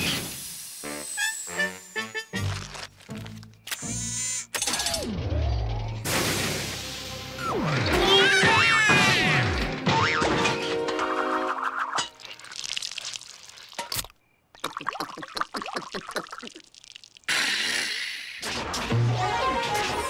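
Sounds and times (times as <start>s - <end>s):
quick gulping effects: 12.2s - 18.4s.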